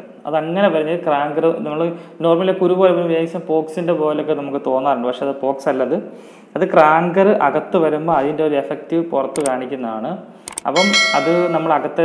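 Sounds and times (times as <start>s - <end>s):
man talking: 6.6s - 12.0s
mouse click: 10.5s - 10.7s
bell ding: 10.7s - 12.0s.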